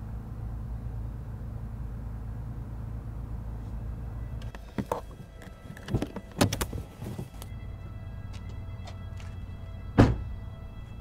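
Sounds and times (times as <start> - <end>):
car engine idling: 0.0 - 11.0
car door unlatching and opening: 4.4 - 7.5, 10.0 - 10.4.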